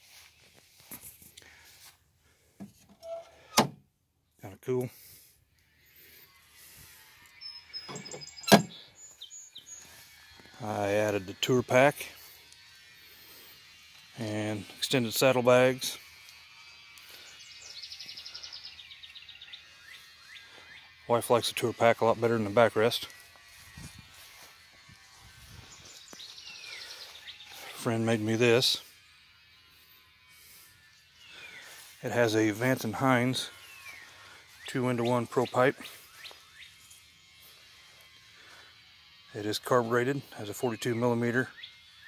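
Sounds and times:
birds chirping: 4.2s - 42.0s.

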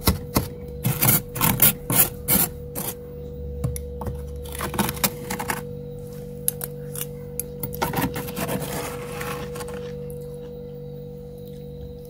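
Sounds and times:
steady hum: 0.0s - 12.0s
spoon scraping frost: 0.8s - 3.0s, 7.8s - 10.0s.

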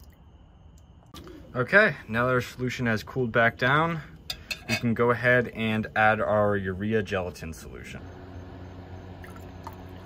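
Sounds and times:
steady low hum: 0.0s - 10.0s
liquid pouring into glass: 9.2s - 10.0s.

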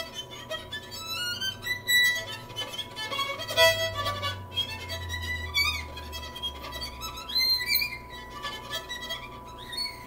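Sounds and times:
solo violin played softly: 0.0s - 10.0s.

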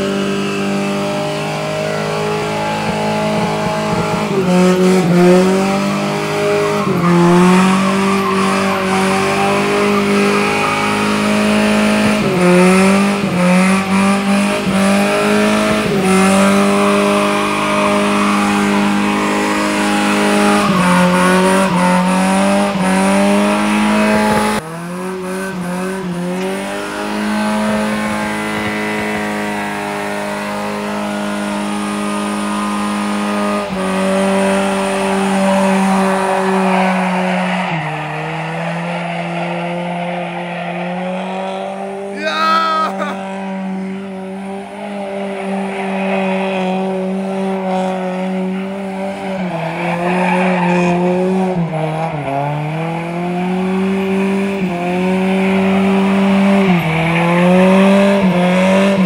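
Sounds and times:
engine revving high: 0.0s - 59.0s
tyres squealing: 5.4s - 12.4s.

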